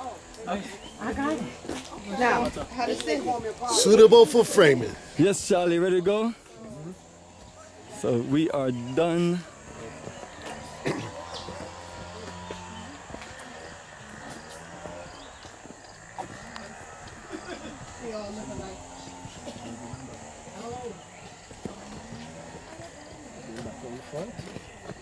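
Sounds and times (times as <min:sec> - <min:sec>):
distant people talking: 0:00.0 - 0:25.0
footsteps on paved path: 0:00.0 - 0:25.0.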